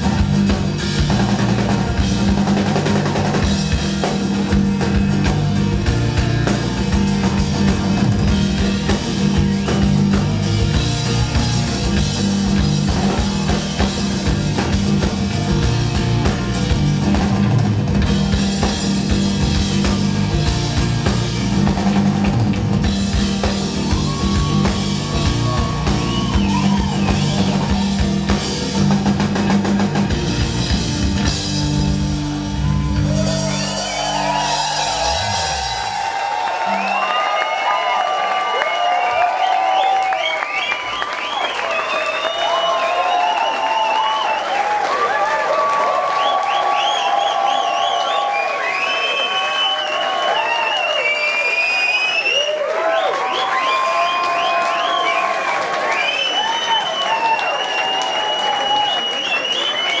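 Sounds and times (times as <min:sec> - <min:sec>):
crowd cheering and applauding: 0:00.0 - 1:00.0.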